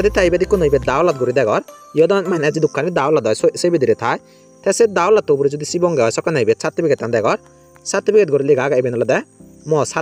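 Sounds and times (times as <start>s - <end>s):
faint background music: 0.0s - 10.0s.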